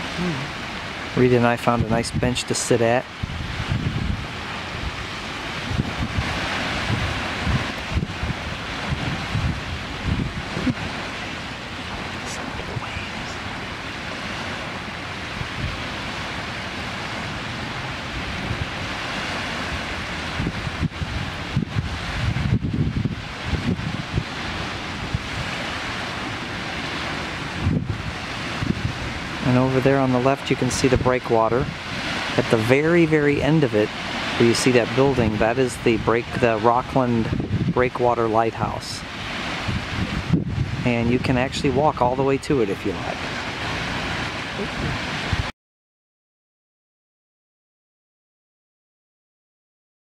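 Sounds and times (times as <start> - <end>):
small waves breaking: 0.0 - 1.9, 2.5 - 40.9, 42.6 - 45.5
wind buffeting microphone: 0.0 - 45.5.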